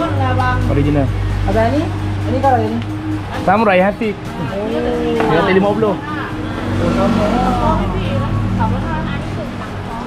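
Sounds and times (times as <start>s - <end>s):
people talking: 0.0s - 10.0s
vehicle engine humming: 0.0s - 10.0s.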